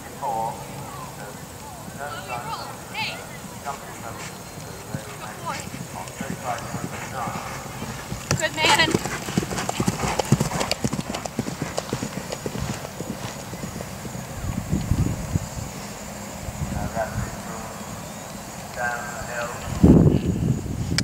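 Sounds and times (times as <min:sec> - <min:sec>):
faint voices: 0:00.0 - 0:09.6, 0:12.2 - 0:20.4
horse hoofbeats on grass: 0:01.6 - 0:17.9.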